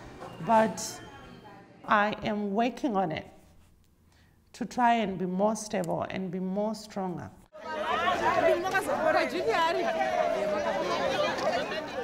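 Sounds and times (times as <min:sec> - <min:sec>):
voices chattering: 0:07.6 - 0:12.0.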